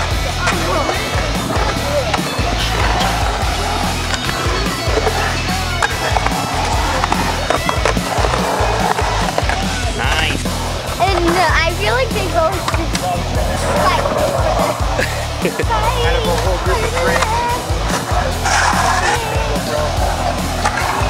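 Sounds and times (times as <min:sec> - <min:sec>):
music playing: 0:00.0 - 0:21.0
skateboard clacks: 0:00.0 - 0:21.0
skateboard wheels rolling on concrete: 0:00.0 - 0:21.0.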